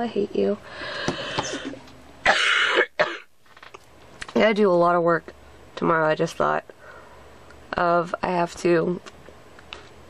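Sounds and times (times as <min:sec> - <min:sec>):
woman coughing: 0:01.5 - 0:03.3.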